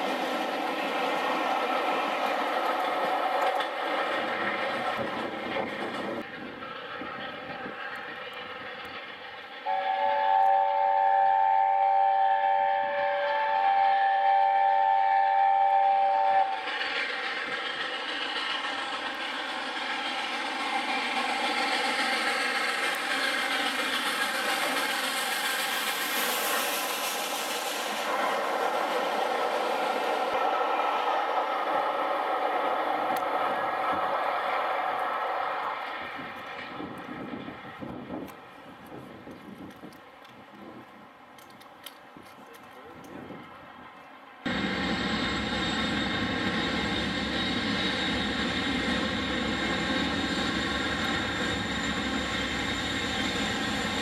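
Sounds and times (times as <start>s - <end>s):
locomotive running noise: 0.0s - 10.7s, 14.4s - 54.0s
train coaches rolling past: 0.0s - 54.0s
steam locomotive chime whistle: 9.6s - 16.8s, 44.5s - 54.0s.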